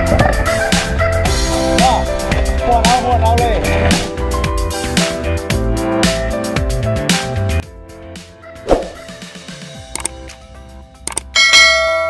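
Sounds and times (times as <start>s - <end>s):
short swoosh: 8.6s - 9.1s
sharp clicks: 10.0s - 10.4s, 11.0s - 11.3s.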